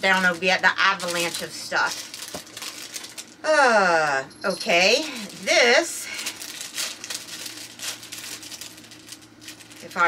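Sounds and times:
plastic bag crinkling: 0.0 - 3.4, 4.5 - 10.0.

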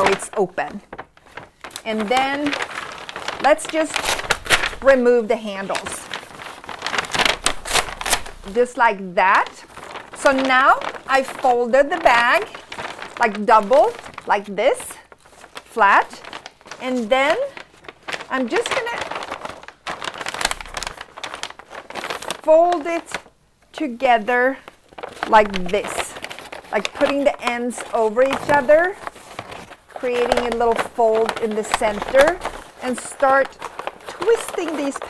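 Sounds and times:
paper bag rustling and crinkling: 0.0 - 35.0.

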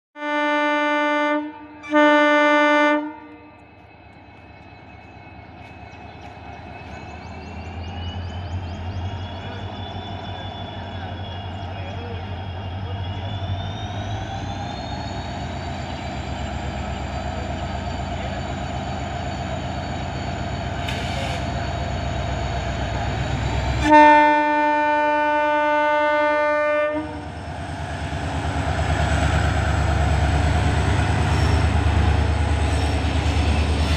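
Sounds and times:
locomotive horn blasts: 0.2 - 3.6, 23.8 - 27.3
diesel locomotive engine rumble: 0.2 - 33.9.

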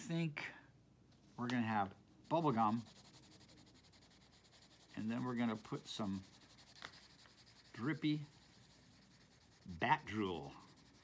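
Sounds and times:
oil pastel rubbing on paper: 2.2 - 11.0.

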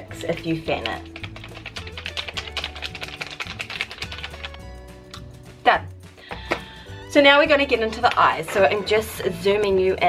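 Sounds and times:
background music with beat: 0.0 - 9.4.

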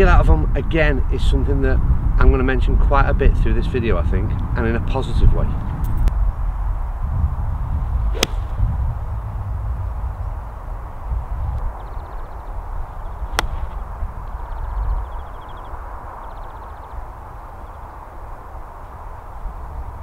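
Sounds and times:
wind rumbling on microphone: 0.0 - 20.0
golf club striking ball: 8.1 - 8.8, 13.3 - 13.8.

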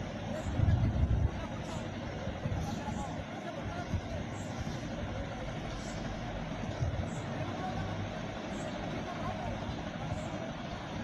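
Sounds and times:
crowd voices talking and calling: 0.0 - 11.0
steady low rumble: 0.0 - 11.0.

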